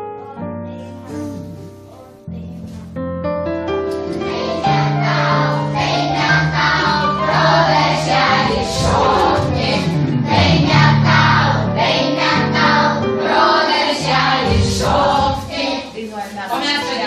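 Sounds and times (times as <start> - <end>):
group of voices singing: 4.2 - 16.0.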